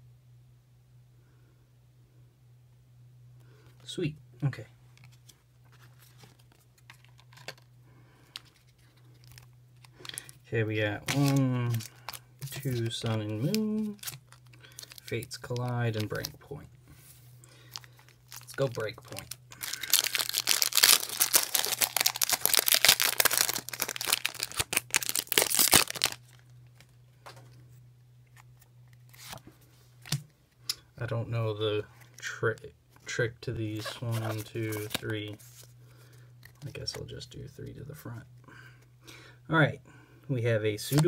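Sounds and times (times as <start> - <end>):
cards and foil packs crinkling: 5.0 - 16.7, 17.4 - 27.4, 28.3 - 30.2, 33.7 - 37.1, 40.8 - 41.0.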